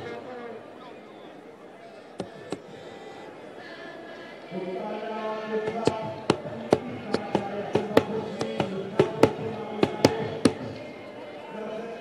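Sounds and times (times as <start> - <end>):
group singing long held notes: 2.2 - 12.0
sharp percussive strikes: 5.7 - 10.8.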